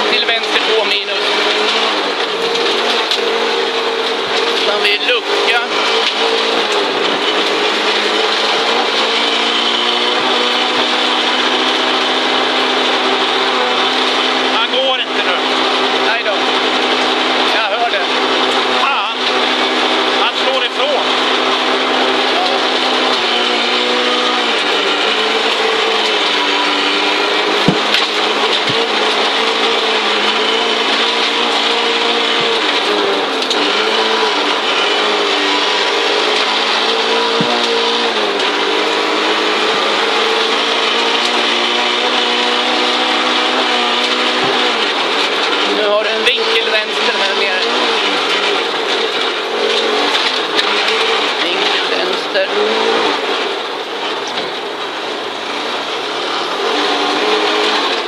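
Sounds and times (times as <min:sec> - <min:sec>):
rally car engine revving: 0:00.0 - 0:58.0
sharp knocks through car body: 0:27.6 - 0:28.9.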